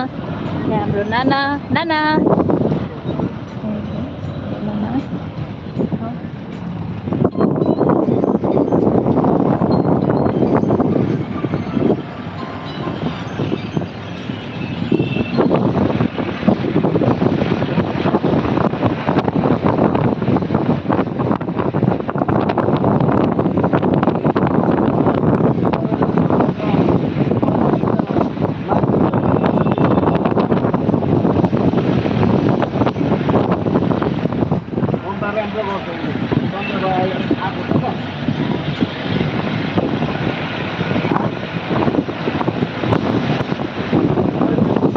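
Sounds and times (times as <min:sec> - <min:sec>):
vehicle engine and road noise: 0:00.0 - 0:44.9.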